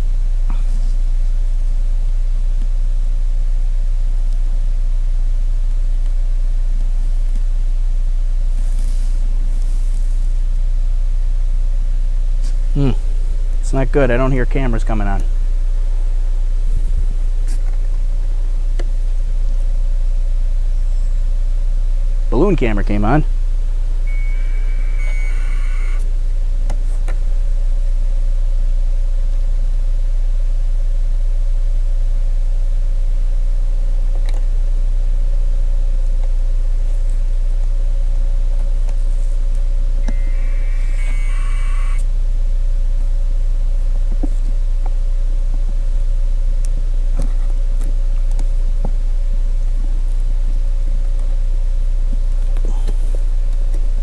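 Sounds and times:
faint steady whine: 0:00.0 - 0:54.0
steady low hum: 0:00.0 - 0:54.0
electronic power-on beeps: 0:24.0 - 0:26.1, 0:40.0 - 0:42.1.

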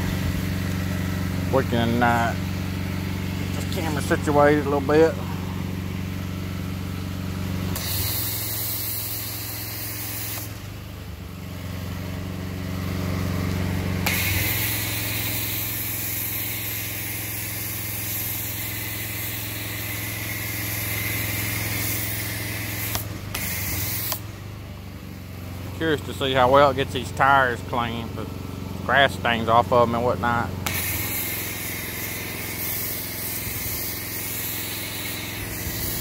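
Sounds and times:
pressure washer engine hum: 0:00.0 - 0:36.0
foam cannon spraying hiss: 0:07.6 - 0:11.0, 0:13.3 - 0:24.6, 0:30.6 - 0:36.0.

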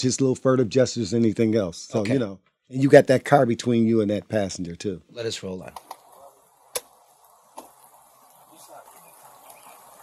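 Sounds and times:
even hiss: 0:00.0 - 0:10.0
faint distant voices: 0:05.1 - 0:10.0.

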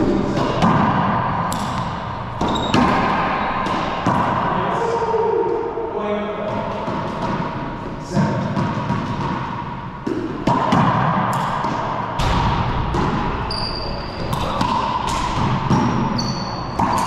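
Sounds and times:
racquetball hits echoing in court: 0:00.0 - 0:05.8, 0:06.4 - 0:17.0.

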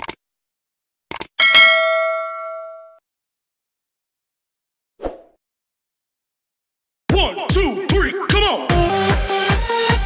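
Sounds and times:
notification bell ding: 0:01.4 - 0:03.0.

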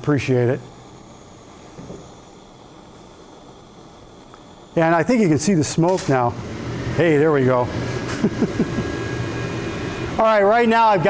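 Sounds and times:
exhaust fan rushing: 0:00.0 - 0:11.0.

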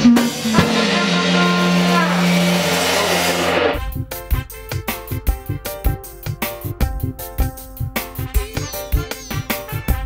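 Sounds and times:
ringing cymbal wash: 0:00.0 - 0:03.8
reggae band holding a chord: 0:00.0 - 0:04.2
music with sharp regular beats: 0:00.3 - 0:08.1.

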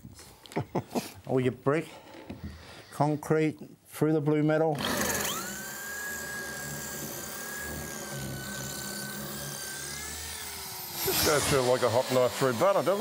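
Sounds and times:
drill bit grinding: 0:04.8 - 0:13.0
electric drill boring into concrete: 0:04.8 - 0:13.0.

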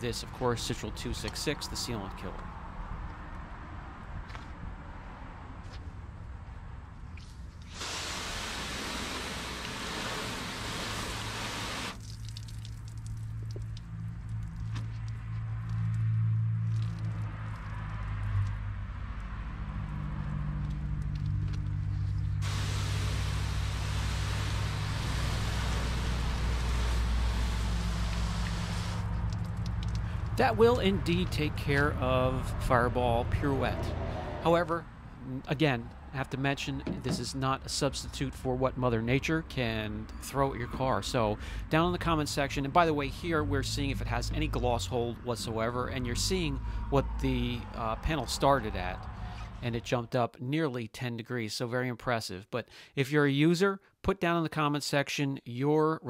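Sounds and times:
water spraying onto car panel: 0:07.7 - 0:13.8, 0:22.4 - 0:30.1
steady low hum: 0:20.8 - 0:33.7.

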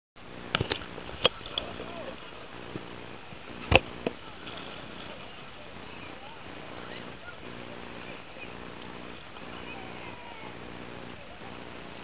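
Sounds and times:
low steady hum: 0:00.2 - 0:12.0.

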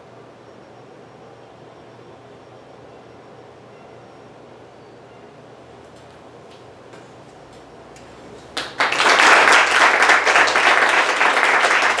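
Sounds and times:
small audience applauding: 0:08.5 - 0:12.0.

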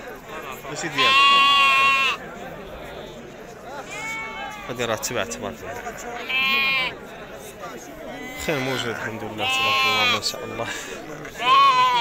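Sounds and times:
market voices: 0:00.0 - 0:12.0
sheep bleating: 0:00.4 - 0:02.2, 0:03.8 - 0:04.8, 0:06.2 - 0:07.0, 0:08.1 - 0:10.6, 0:11.4 - 0:12.0.

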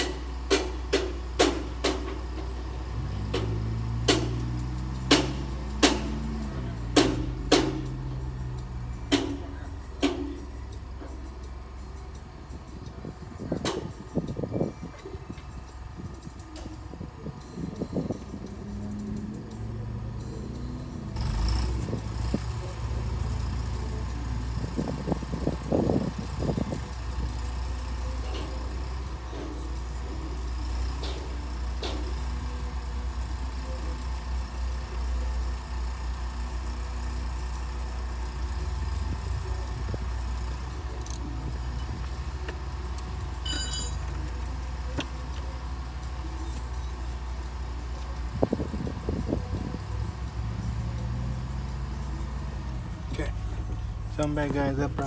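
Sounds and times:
vehicle engine idling: 0:00.0 - 0:55.0
brief high tone: 0:43.4 - 0:44.0.

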